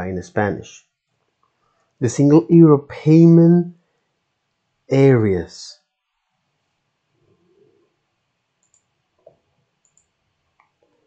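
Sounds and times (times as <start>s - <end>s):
computer mouse clicks: 8.6s - 10.9s.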